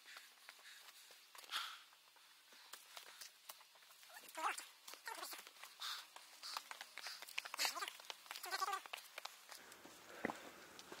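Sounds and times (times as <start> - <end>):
footsteps on stone: 0.0 - 11.0.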